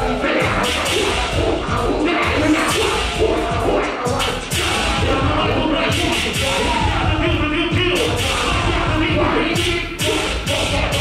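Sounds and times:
crowd noise: 0.0 - 11.0
loud dance music: 0.0 - 11.0.

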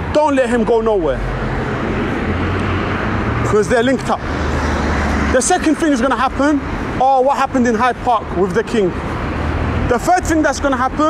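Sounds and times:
passing road traffic hiss: 0.0 - 11.0.

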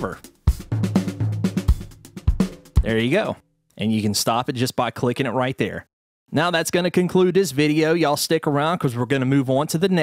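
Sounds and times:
sampled drum groove: 0.0 - 3.4.

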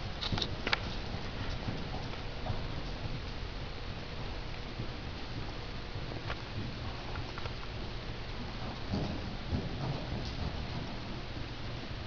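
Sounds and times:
hoofbeats on dirt: 0.1 - 11.5.

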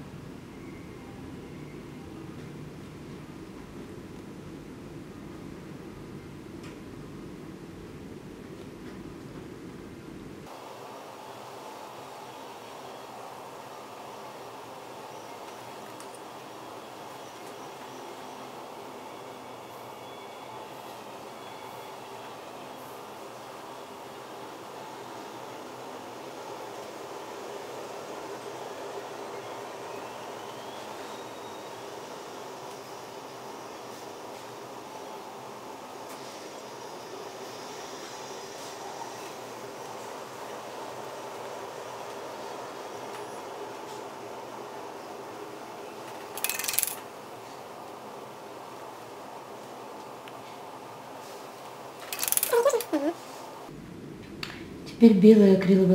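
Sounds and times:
faint hum: 0.0 - 55.9
clatter of small hard objects: 52.0 - 53.0.

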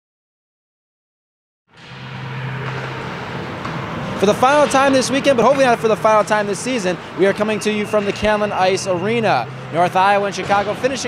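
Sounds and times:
indoor arena hum and hiss: 1.7 - 11.0.

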